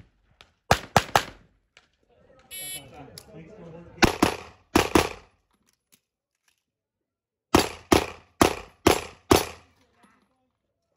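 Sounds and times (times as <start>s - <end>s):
pistol shots: 0.7s - 1.4s, 4.0s - 5.3s, 7.5s - 9.6s.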